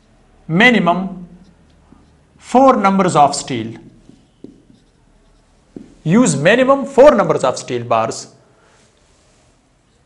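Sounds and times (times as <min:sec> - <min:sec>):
marker writing on whiteboard: 0:00.0 - 0:00.3, 0:01.0 - 0:07.7, 0:09.6 - 0:10.0.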